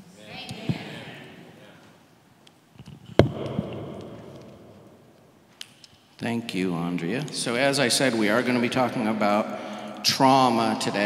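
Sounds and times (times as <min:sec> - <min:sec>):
thump on handheld microphone: 0:03.2 - 0:03.8.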